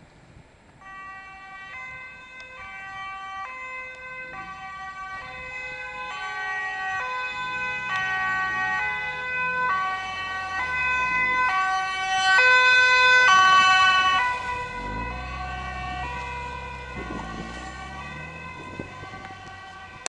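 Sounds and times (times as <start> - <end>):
vehicle engine and tyre noise: 0.0 - 20.0
two-tone ambulance siren: 0.8 - 20.0.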